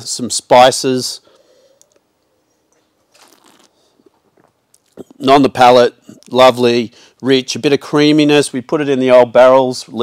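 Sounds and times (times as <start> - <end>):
person sipping wine: 3.1 - 5.2
wet mouth clicks: 3.2 - 5.2.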